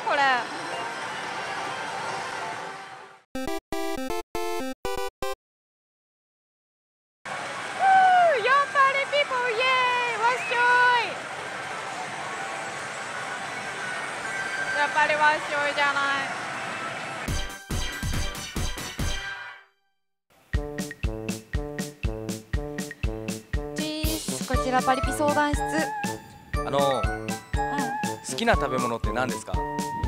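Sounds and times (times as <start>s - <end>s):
woman shouting long calls: 7.8s - 11.1s.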